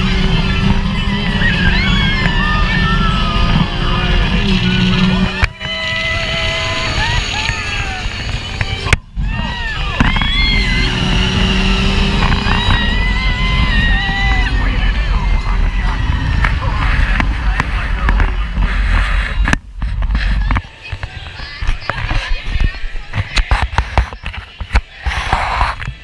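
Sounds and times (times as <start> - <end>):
ride vehicle rumble: 0.0 - 26.0
wind rushing over microphone: 0.0 - 26.0.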